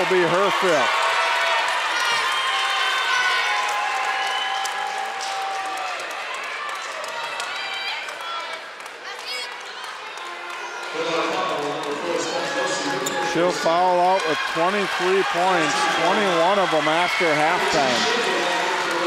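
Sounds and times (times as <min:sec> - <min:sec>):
crowd hubbub: 0:09.0 - 0:19.0
spectators shouting: 0:13.2 - 0:19.0.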